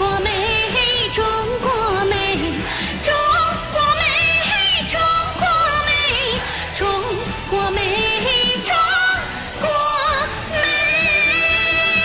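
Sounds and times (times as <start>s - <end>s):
woman singing pop ballad: 0.0s - 12.0s.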